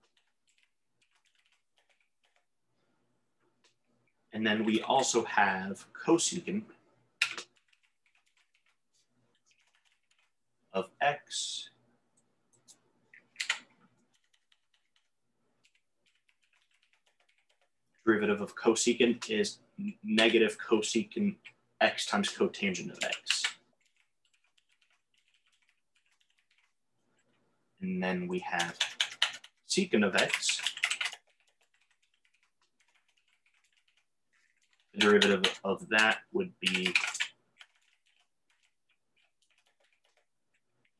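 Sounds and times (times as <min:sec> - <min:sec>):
typing on computer keyboard: 0:00.0 - 0:02.5, 0:07.2 - 0:08.8, 0:09.4 - 0:10.4, 0:12.6 - 0:17.8, 0:22.9 - 0:27.4, 0:28.5 - 0:40.9.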